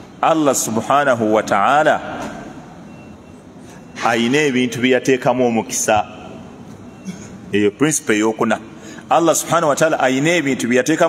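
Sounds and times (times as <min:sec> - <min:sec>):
faint high-pitched beep: 0:02.8 - 0:04.1, 0:06.7 - 0:07.3.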